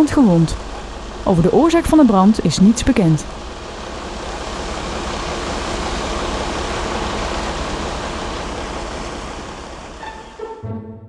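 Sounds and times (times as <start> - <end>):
water jets spraying: 0.0 - 10.4.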